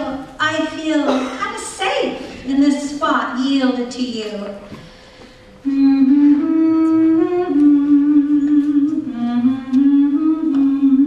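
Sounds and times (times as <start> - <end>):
woman humming a slow melody: 5.6 - 11.0.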